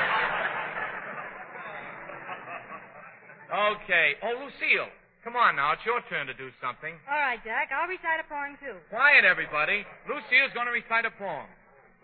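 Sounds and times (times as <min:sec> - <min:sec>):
studio audience laughter: 0:00.0 - 0:03.5.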